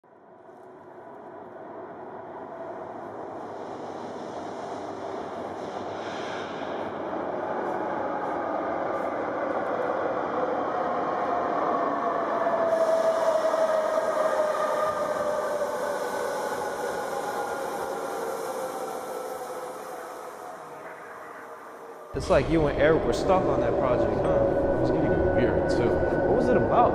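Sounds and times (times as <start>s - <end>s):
subway train rumble: 0.1s - 26.9s
hiss: 3.6s - 7.0s, 12.7s - 21.1s.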